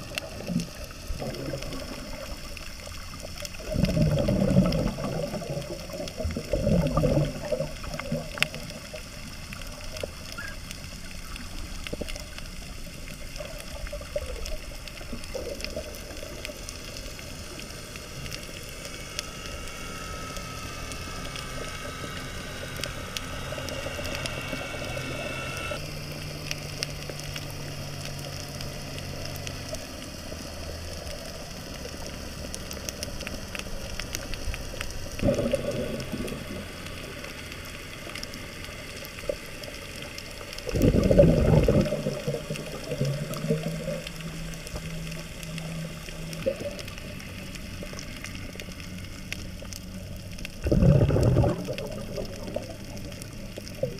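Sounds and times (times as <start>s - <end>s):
faint humming tones: 0.0s - 53.9s
rushes of water: 0.0s - 53.9s
faint clicks: 0.1s - 53.9s
underwater hiss: 50.2s - 53.9s.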